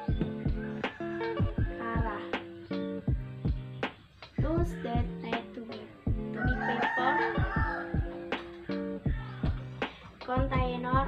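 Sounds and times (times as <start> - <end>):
acoustic guitar music: 0.0 - 11.0
rooster crowing: 0.2 - 2.3, 6.2 - 10.1.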